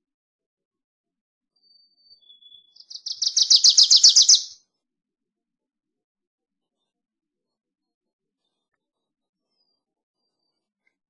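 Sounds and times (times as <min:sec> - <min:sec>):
warbler singing: 0:02.1 - 0:04.6.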